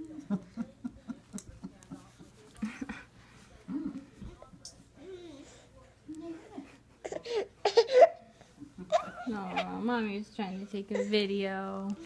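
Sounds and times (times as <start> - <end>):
laughter in rhythmic bursts: 0.1 - 3.1.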